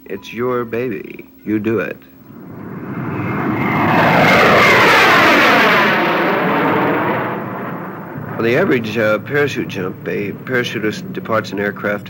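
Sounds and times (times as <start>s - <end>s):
jet aircraft flying overhead: 2.2s - 12.0s.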